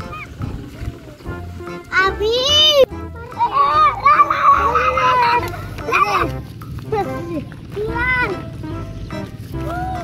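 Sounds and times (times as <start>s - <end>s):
children calling out: 0.0s - 1.2s, 1.8s - 8.7s, 9.4s - 10.0s.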